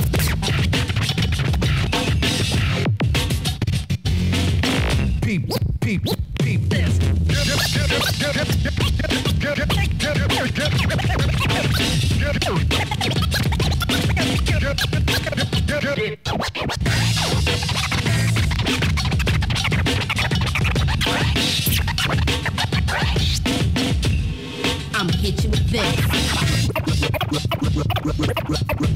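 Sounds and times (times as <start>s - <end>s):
hip-hop beat: 0.0s - 28.9s
record scratching: 0.0s - 28.9s.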